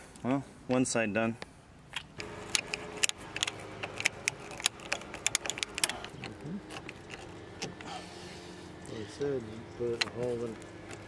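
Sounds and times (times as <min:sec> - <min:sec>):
faint steady hum: 0:00.0 - 0:11.0
metallic clicks of hand tools: 0:02.1 - 0:07.2.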